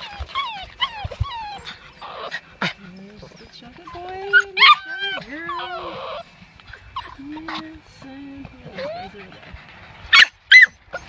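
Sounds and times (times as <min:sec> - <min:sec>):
puppies whining: 0:00.0 - 0:11.0.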